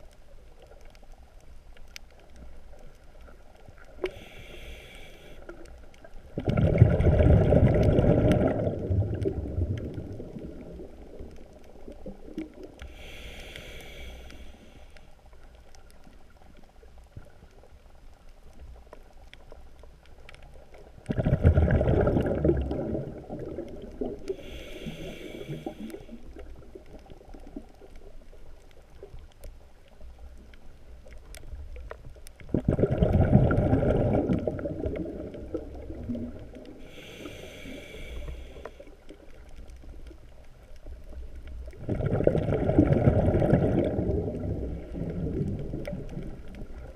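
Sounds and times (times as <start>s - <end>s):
crackling clicks: 0.0s - 46.9s
low underwater rumble: 0.0s - 46.9s.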